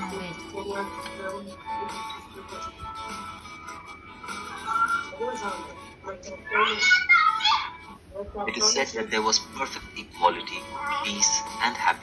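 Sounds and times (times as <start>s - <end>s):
background music through laptop speakers: 0.0s - 12.0s.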